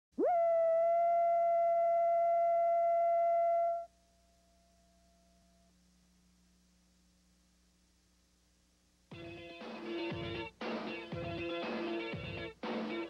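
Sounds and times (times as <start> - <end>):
faint hum: 0.2 - 12.6.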